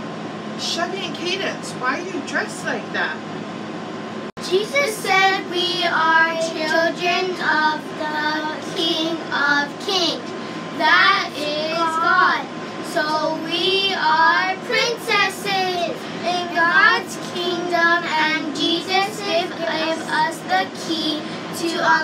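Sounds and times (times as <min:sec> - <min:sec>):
young girls singing: 0:04.5 - 0:10.2, 0:10.8 - 0:22.0.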